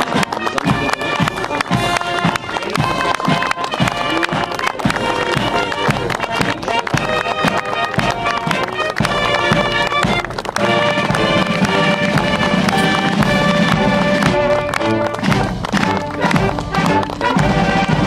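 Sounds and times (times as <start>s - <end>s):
military marching band: 0.0s - 18.0s.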